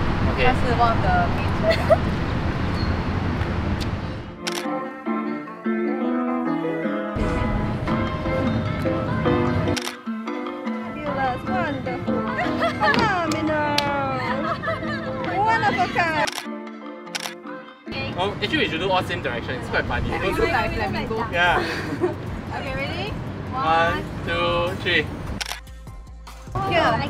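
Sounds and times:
street noise low rumble: 0.0s - 4.7s, 7.1s - 16.5s, 17.1s - 27.0s
camera shutter click: 4.4s - 4.8s, 9.7s - 10.0s, 16.2s - 16.5s, 17.1s - 17.4s, 25.4s - 25.7s
background music with held notes: 4.6s - 18.3s.

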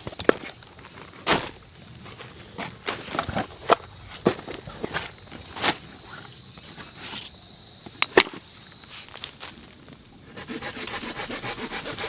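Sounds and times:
dry leaves crunching: 8.8s - 10.0s.

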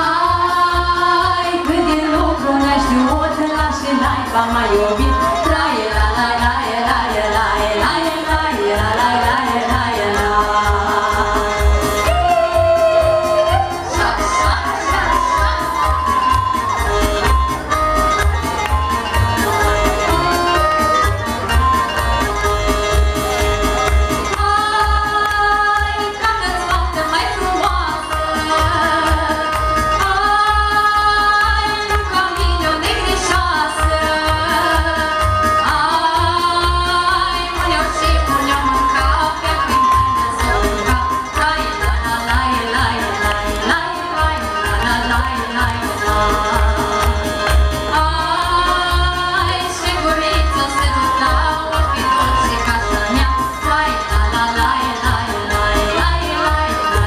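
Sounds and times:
women singing folk song: 0.0s - 17.5s, 19.1s - 21.1s, 24.2s - 57.0s
electronic keyboard: 6.9s - 57.0s.

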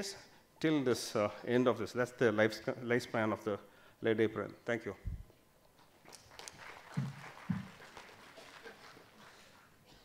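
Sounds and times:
audience applauding: 6.1s - 9.8s.

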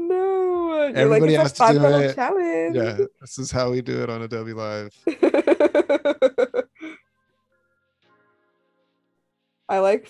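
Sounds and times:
person laughing: 1.0s - 3.2s, 5.1s - 7.0s.

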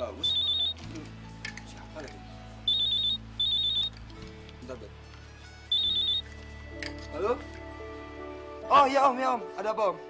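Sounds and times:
phone ringtone beeps: 0.2s - 0.8s, 2.7s - 4.0s, 5.7s - 6.3s.

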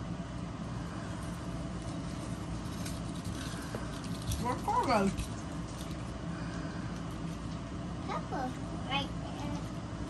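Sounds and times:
steady low hum: 0.0s - 10.0s
child's voice: 8.0s - 9.7s.

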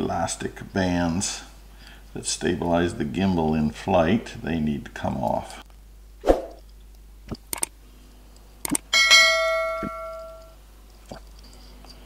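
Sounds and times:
sharp clicks: 7.3s - 7.8s, 8.6s - 8.9s
bright bell ding: 9.0s - 10.6s.

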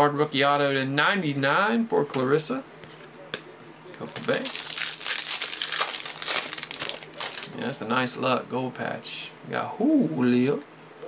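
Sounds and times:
plastic bag crinkling: 4.0s - 7.6s.

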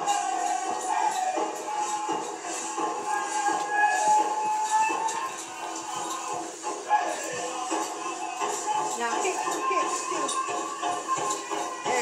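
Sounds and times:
powwow drum and singing: 0.0s - 12.0s.

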